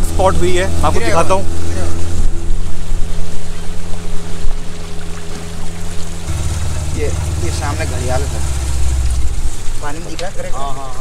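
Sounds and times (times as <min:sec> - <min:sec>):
motorboat engine humming: 0:00.0 - 0:11.0.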